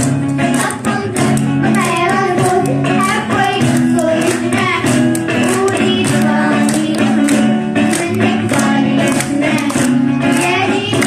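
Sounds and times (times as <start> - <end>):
hand percussion beat: 0.0 - 11.0
strummed acoustic guitars: 0.0 - 11.0
children singing: 0.5 - 11.0.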